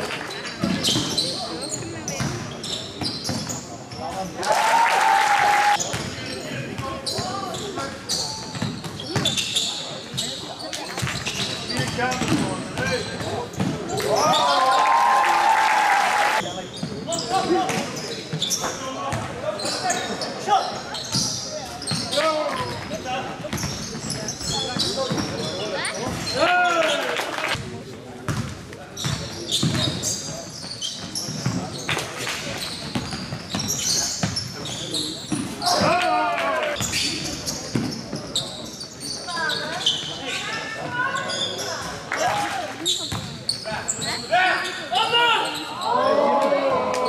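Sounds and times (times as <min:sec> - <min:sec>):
basketball bouncing on court: 0:11.0 - 0:13.9, 0:28.3 - 0:30.1, 0:32.8 - 0:34.5.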